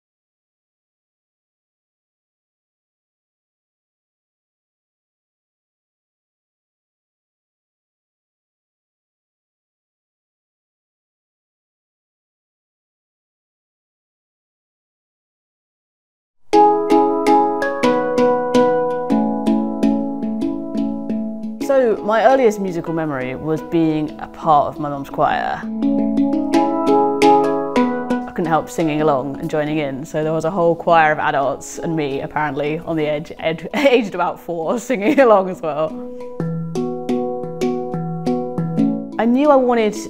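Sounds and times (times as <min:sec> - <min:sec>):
handpan notes played by fingers: 0:16.5 - 0:29.5, 0:36.2 - 0:39.2.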